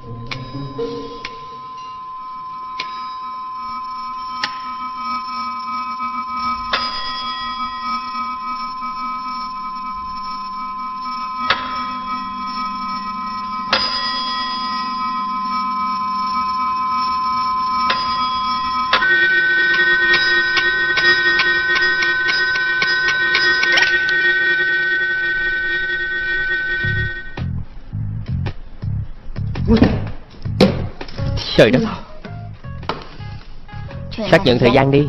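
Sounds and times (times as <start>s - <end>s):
high ringing tones: 0.0s - 28.0s, 31.2s - 35.0s.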